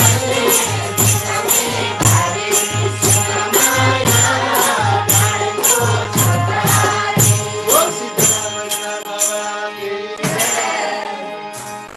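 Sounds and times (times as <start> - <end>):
group singing devotional song: 0.0 - 11.9
jingling hand percussion: 0.0 - 11.9.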